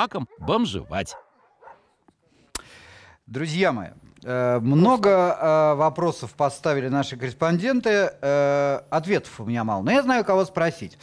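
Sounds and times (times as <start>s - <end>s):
faint dogs: 0.1s - 2.0s.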